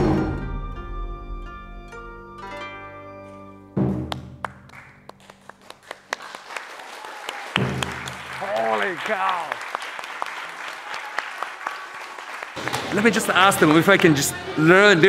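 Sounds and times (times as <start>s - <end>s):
small audience clapping: 4.1s - 14.6s.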